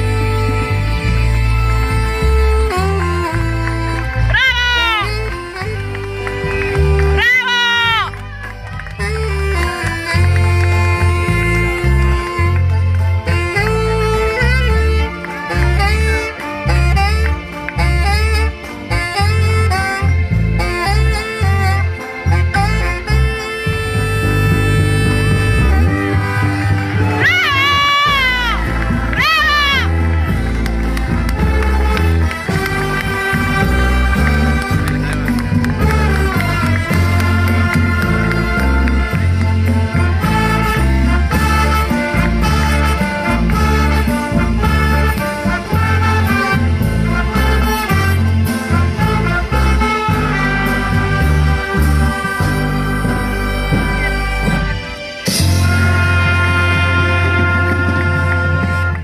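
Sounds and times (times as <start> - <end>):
big band accompaniment: 0.0 - 59.0
low bass line: 0.0 - 59.0
saxophone solo melody: 0.0 - 59.0.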